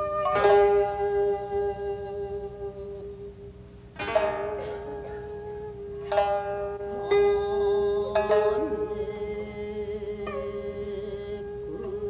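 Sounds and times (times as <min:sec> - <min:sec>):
plucked string ringing: 0:00.0 - 0:12.0.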